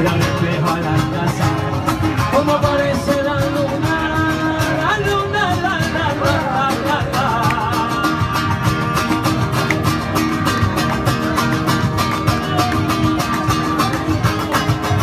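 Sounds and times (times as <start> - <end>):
strummed acoustic guitars: 0.0 - 15.0.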